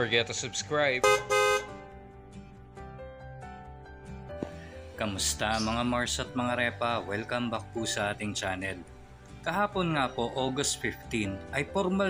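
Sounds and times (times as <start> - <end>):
vehicle horn toots: 1.0 - 1.8.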